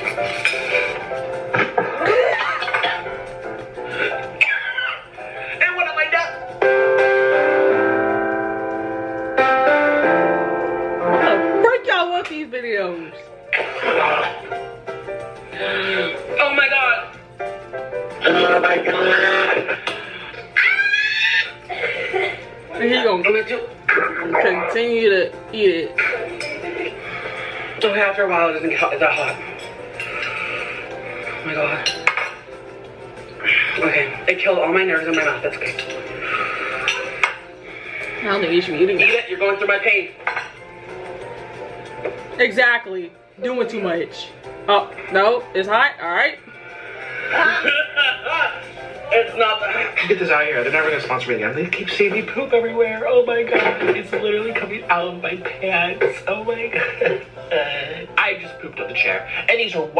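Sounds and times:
background music: 0:00.0 - 0:59.9
tableware clink: 0:29.1 - 0:30.6, 0:31.8 - 0:32.5, 0:35.0 - 0:36.2, 0:36.8 - 0:37.4, 0:40.2 - 0:40.6.

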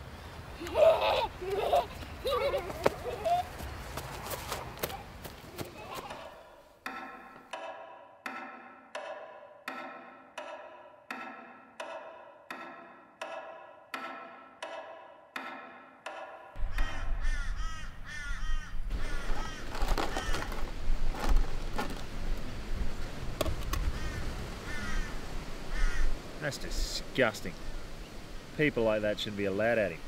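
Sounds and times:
laughter: 0:00.6 - 0:03.6.

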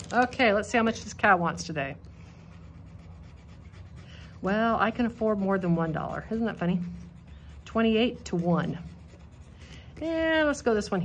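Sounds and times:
metal tool scratching paper card: 0:02.5 - 0:10.6.

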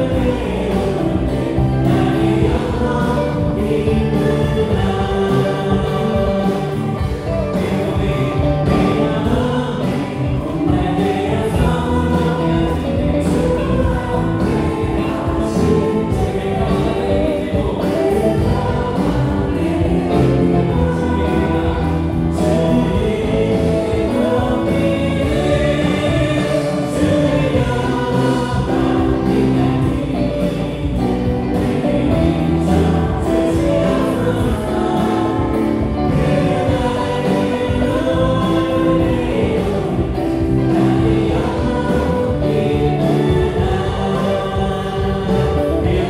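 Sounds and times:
group of voices singing: 0:00.0 - 0:46.0
worship band playing: 0:00.0 - 0:46.0.

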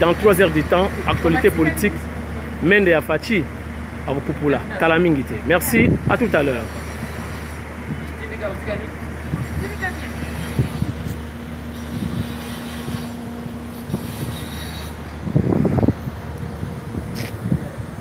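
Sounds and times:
vehicle engine idling: 0:00.0 - 0:18.0.

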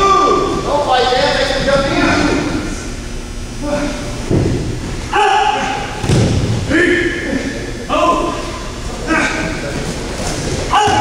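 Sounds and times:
short shouts: 0:05.1 - 0:06.0, 0:10.7 - 0:11.0.

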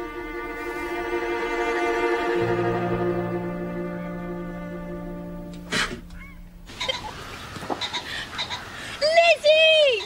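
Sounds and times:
low held musical note: 0:00.0 - 0:06.7
soft outdoor hiss: 0:00.0 - 0:10.0.

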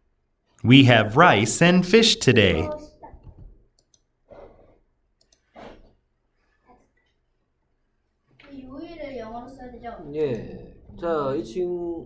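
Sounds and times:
computer mouse clicks: 0:05.2 - 0:05.5.

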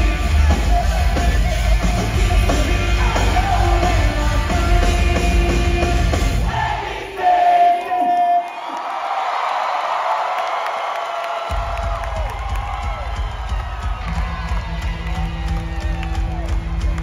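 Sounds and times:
pop-punk band playing live: 0:00.0 - 0:06.6, 0:11.5 - 0:17.0
crowd cheering and whooping: 0:08.0 - 0:17.0.

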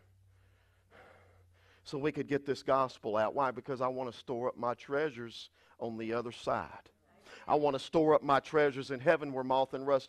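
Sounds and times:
man breathing in: 0:00.0 - 0:01.9, 0:05.5 - 0:05.8, 0:07.2 - 0:07.5
man speaking: 0:01.8 - 0:10.0.

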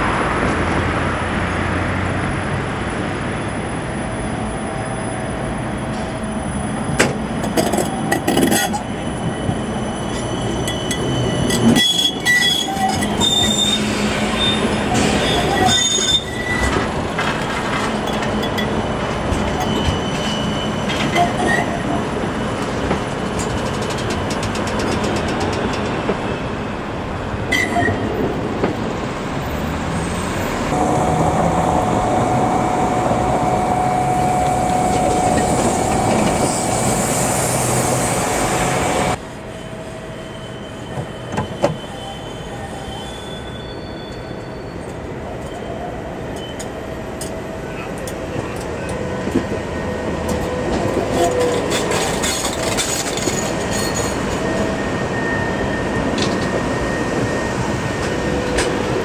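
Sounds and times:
street noise: 0:00.0 - 0:59.0
tram rolling on rails: 0:00.0 - 0:59.0
high wheel squeal: 0:07.8 - 0:16.9, 0:18.4 - 0:21.9, 0:30.4 - 0:46.9, 0:47.6 - 0:59.0.

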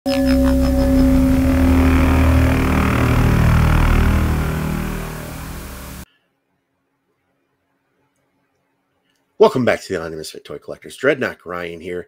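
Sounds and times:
engine-like rumble: 0:00.1 - 0:06.0
intro music: 0:00.1 - 0:06.0.

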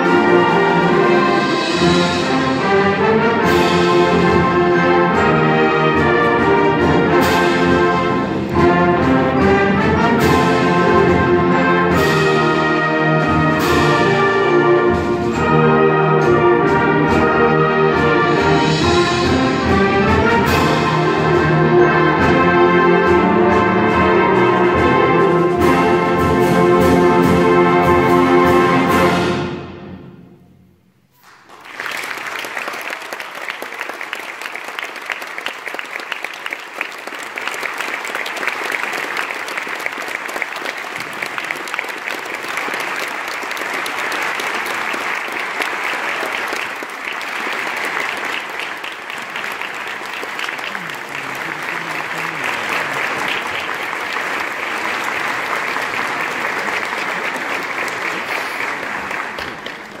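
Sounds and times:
audience applauding: 0:31.2 - 1:00.0.

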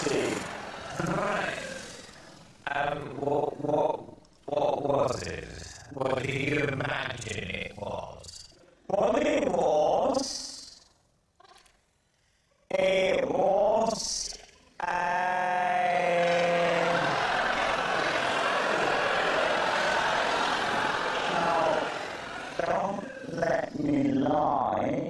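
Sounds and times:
voices talking: 0:00.0 - 0:02.1, 0:16.4 - 0:24.0
studio audience laughing: 0:00.0 - 0:02.4, 0:15.9 - 0:23.5.

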